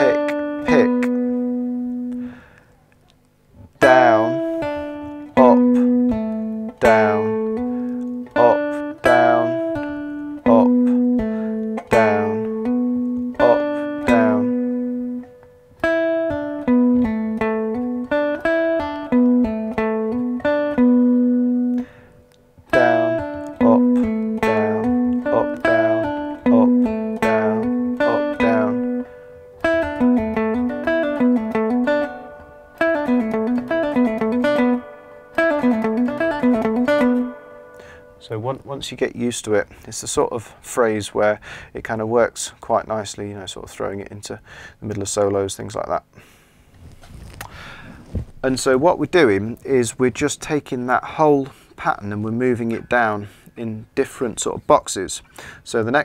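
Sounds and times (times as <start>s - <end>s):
cigar box guitar playing: 0.0s - 41.0s, 46.8s - 56.0s.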